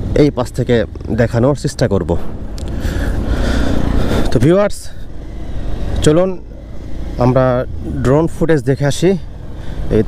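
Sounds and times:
motorcycle engine running: 0.0s - 10.0s
road noise: 0.0s - 10.0s.

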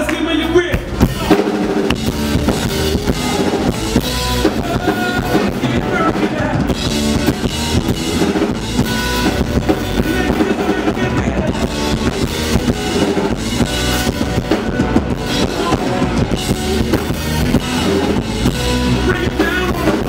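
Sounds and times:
live rock band playing: 0.0s - 20.0s.

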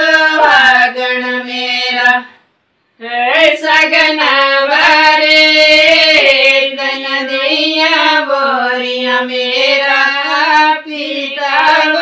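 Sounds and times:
women singing folk song: 0.0s - 2.4s, 3.0s - 12.0s.

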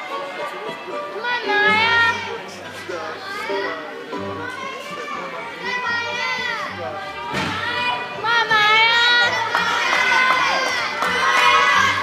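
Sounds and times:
children chattering and calling: 0.0s - 12.0s
music playing: 0.0s - 12.0s.

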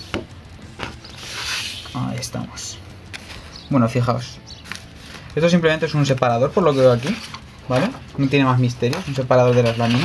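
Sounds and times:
card sheets sliding rustle: 0.8s - 2.0s, 4.6s - 10.0s.

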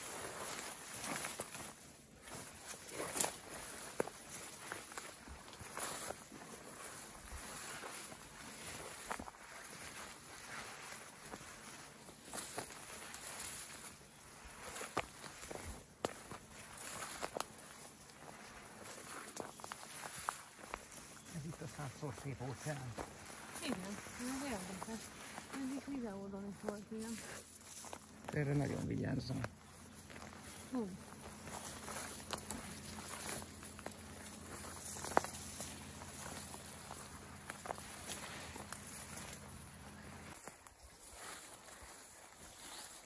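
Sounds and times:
footsteps through dry grass: 0.0s - 43.0s
steady outdoor hiss: 0.0s - 43.0s
person speaking: 21.3s - 27.3s, 28.3s - 29.5s.

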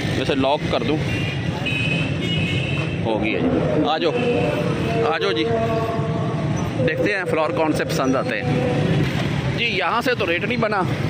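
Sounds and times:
traffic engines humming: 0.0s - 11.0s.

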